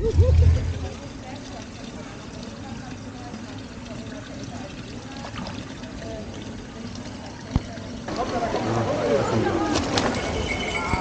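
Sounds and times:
loud low rumble: 0.0 - 1.0.

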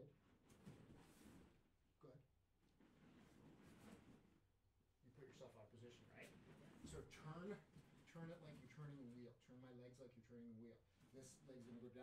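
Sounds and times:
cloth rustling on mat: 2.7 - 4.4.

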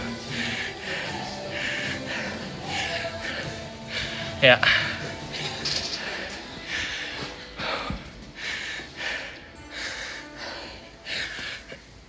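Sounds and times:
background music: 0.0 - 12.0
person breathing noisily: 0.0 - 12.0.

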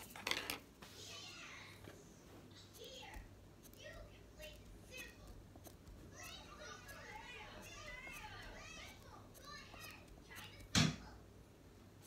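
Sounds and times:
children playing and calling: 2.8 - 11.2.

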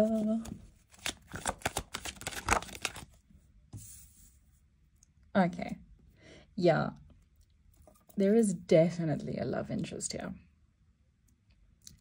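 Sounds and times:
cards being shuffled: 0.0 - 3.2
card soft slide: 3.8 - 4.4.

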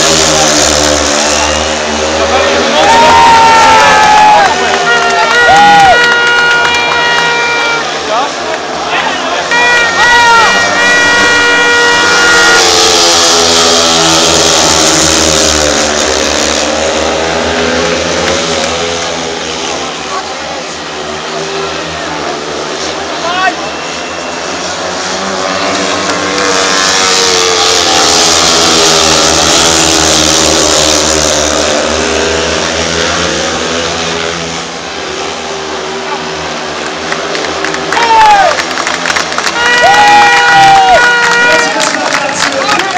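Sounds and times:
motorcycle engines racing: 0.0 - 42.9.

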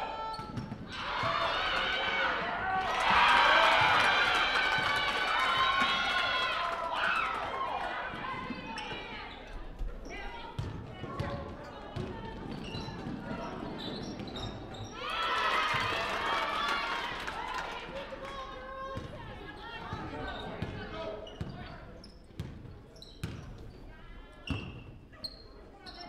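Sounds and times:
players' voices: 0.0 - 24.5
sneakers squeaking: 0.2 - 0.9, 8.5 - 15.0, 19.7 - 26.0.

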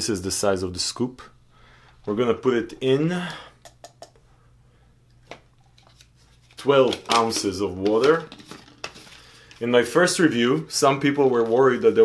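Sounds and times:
plastic shaker bottle handling: 5.3 - 9.7.

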